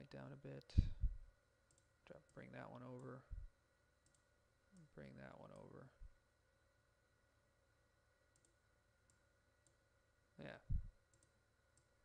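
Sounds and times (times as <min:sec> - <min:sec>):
faint electrical hum: 0:00.0 - 0:12.0
computer mouse clicks: 0:01.7 - 0:02.4, 0:04.0 - 0:04.9, 0:08.3 - 0:09.8, 0:11.1 - 0:11.9.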